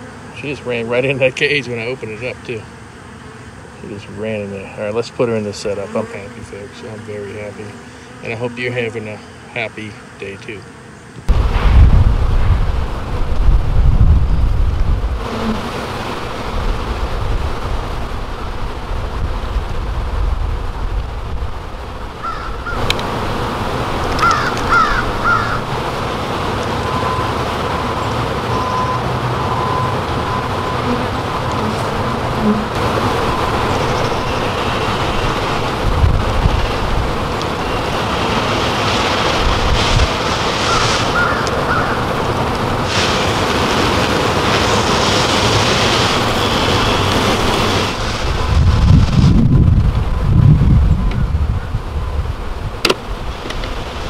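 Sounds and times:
honey bees buzzing: 0.0s - 54.0s
outdoor rumble: 11.1s - 54.0s
bird calls: 22.2s - 22.9s, 24.2s - 25.6s, 33.6s - 35.4s, 40.6s - 42.1s.

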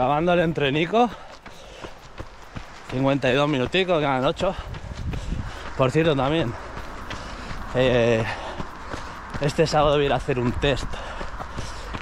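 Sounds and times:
runner's footfalls: 0.0s - 12.0s.

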